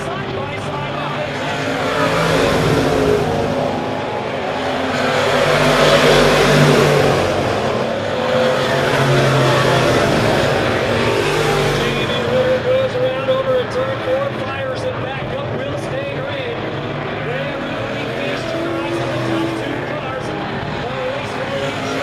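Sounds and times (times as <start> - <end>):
race car engines: 0.0 - 22.0.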